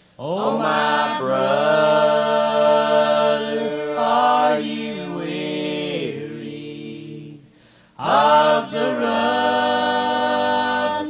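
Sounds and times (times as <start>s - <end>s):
gospel group singing in harmony: 0.2s - 11.0s.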